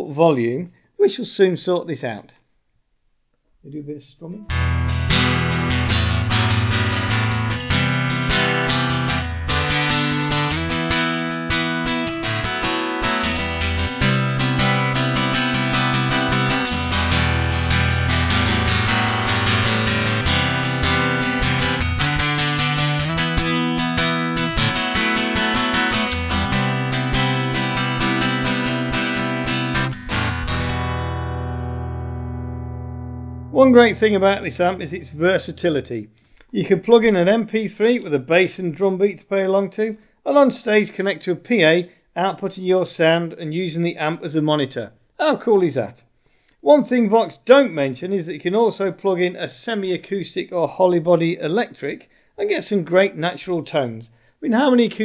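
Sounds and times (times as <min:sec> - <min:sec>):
acoustic guitar chords: 0:04.4 - 0:36.0.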